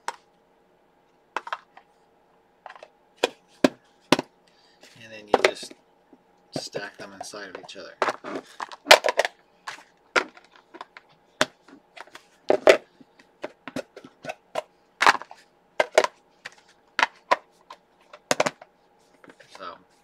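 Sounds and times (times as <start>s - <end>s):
plastic boxes clacking together: 1.4s - 1.8s, 6.6s - 18.7s.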